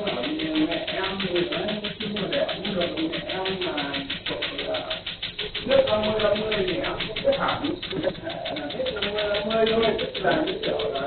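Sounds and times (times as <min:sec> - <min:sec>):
laser rapid steady clicking: 0:00.0 - 0:11.0
people talking: 0:00.0 - 0:11.0.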